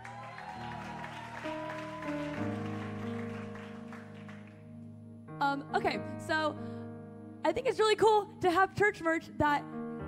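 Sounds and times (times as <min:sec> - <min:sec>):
soft instrumental background music: 0:00.1 - 0:10.0.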